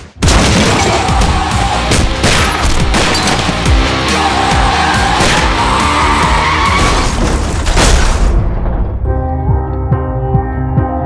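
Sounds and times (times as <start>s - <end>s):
dramatic music: 0.2s - 11.0s
car tyres screeching: 4.4s - 7.2s.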